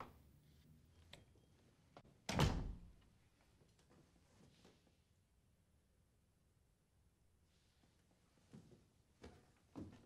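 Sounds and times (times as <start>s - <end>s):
door shutting with thud: 2.3s - 2.9s.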